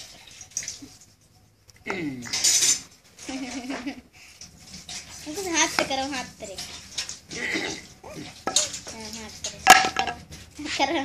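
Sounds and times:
child's voice: 5.2s - 6.7s, 8.9s - 9.7s, 10.6s - 11.0s.

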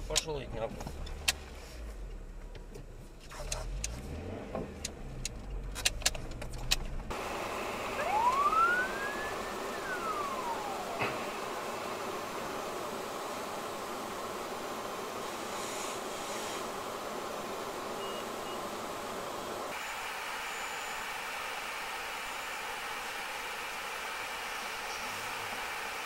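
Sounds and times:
road noise from moving car: 0.0s - 12.7s
siren wail: 7.7s - 11.6s.

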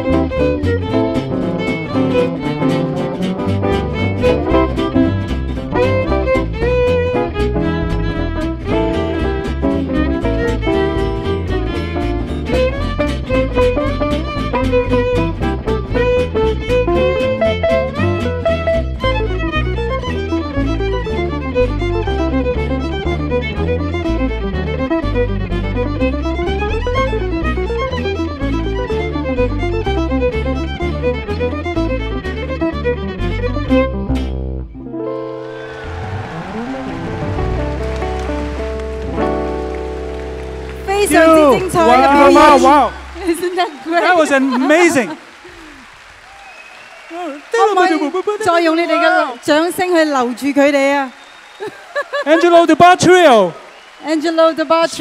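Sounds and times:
violin melody with vibrato: 0.0s - 34.1s, 35.0s - 45.2s
walking double bass line: 0.0s - 35.0s, 35.9s - 44.1s
rhythm guitar strumming: 0.0s - 35.6s, 36.2s - 45.2s.

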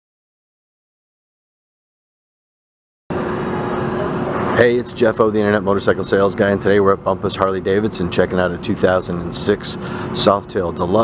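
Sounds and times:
indoor room hum and hiss: 3.1s - 11.0s.

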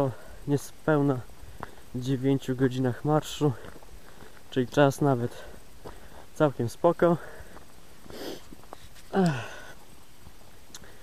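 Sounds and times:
man sniffing: 8.1s - 9.8s
man sighing: 9.1s - 9.8s.

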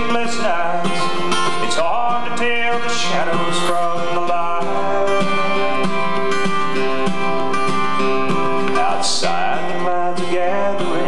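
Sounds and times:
man singing: 0.0s - 6.3s, 8.7s - 11.0s
strummed acoustic guitar: 0.0s - 11.0s.

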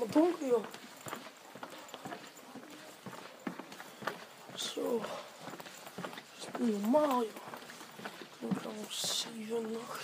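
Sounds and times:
faint footsteps on hard floor: 0.0s - 10.0s.

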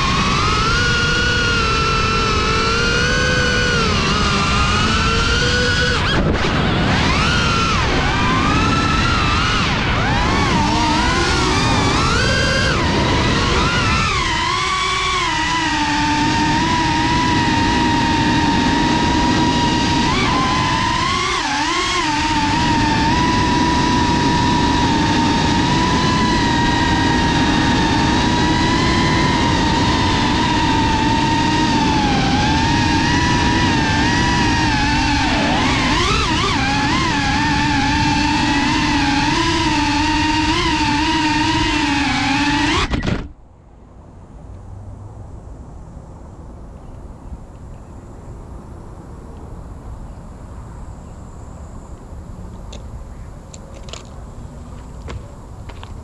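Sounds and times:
drone propellers whining: 0.0s - 43.4s.

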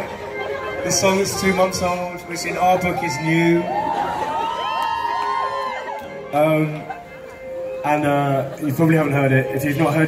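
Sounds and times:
audience cheering and screaming: 2.6s - 6.4s.

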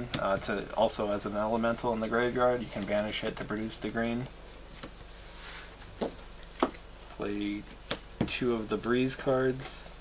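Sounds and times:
cards sliding on cloth mat: 4.5s - 6.7s.

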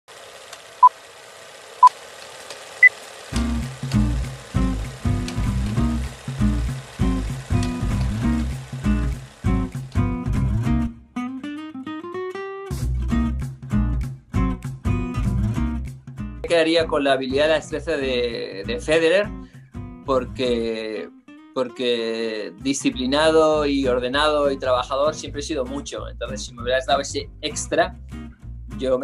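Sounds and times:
intro music with pulsing beat: 3.3s - 11.0s.

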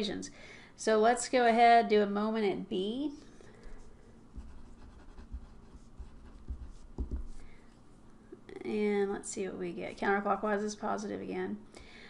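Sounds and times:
pen scratching on paper: 4.3s - 7.4s
pen knocking on desk: 6.4s - 7.4s.

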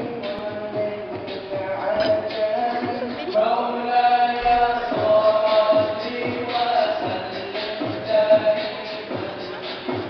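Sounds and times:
person singing nasheed: 0.0s - 10.0s.

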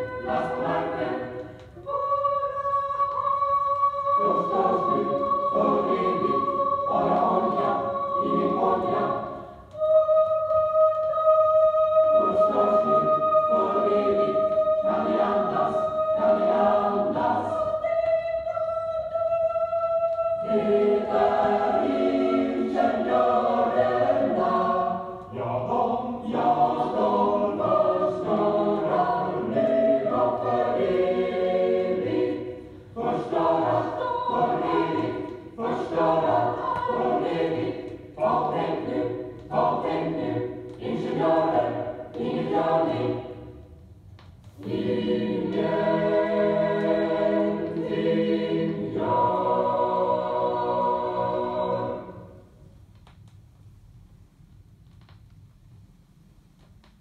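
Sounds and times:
mixed choir singing: 0.0s - 43.6s, 44.6s - 52.6s.

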